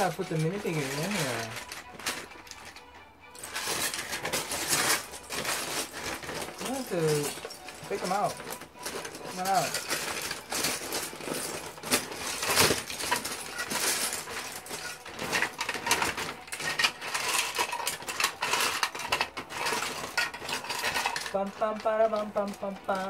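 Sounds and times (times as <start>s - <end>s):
plastic bricks clattering: 0.0s - 23.0s.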